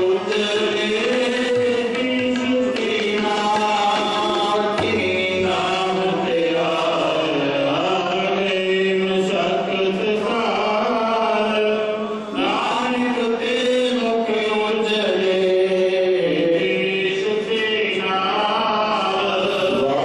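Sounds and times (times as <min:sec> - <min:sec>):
harmonium long notes: 0:00.0 - 0:20.0
men singing a hymn: 0:00.0 - 0:20.0.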